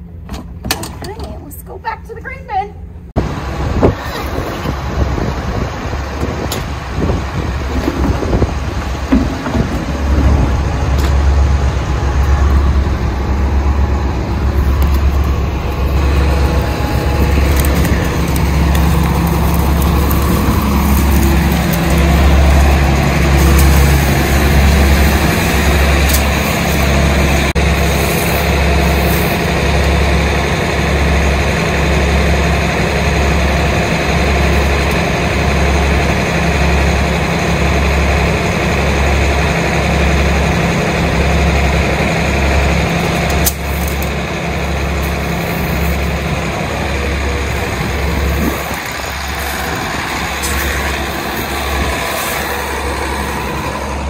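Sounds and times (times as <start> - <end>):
large engine throbbing: 3.0 - 54.0.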